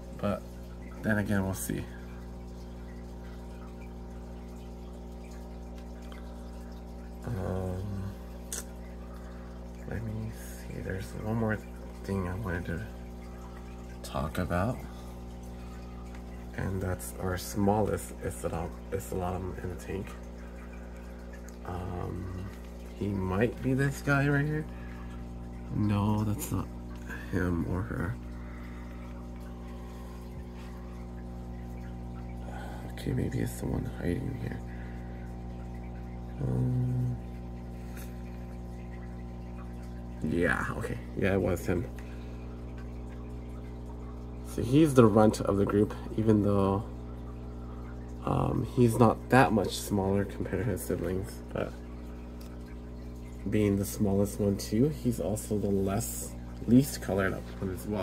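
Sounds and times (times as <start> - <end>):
aquarium filters bubbling: 0.0 - 58.0
constant low hum: 0.0 - 58.0.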